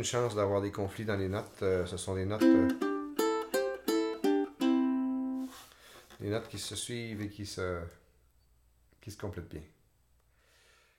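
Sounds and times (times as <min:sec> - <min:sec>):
ukulele picked melody: 0:02.4 - 0:05.7.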